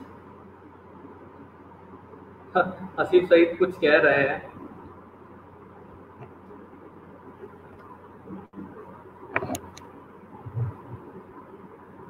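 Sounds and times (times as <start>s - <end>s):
room noise and hum: 0.0s - 12.0s.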